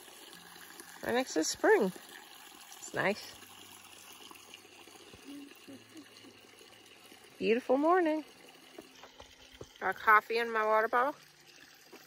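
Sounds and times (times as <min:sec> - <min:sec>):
water trickling from pipe: 0:00.0 - 0:12.0.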